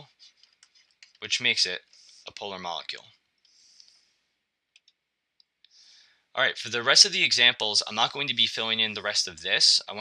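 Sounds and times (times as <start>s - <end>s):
soft clicks: 4.7s - 5.8s.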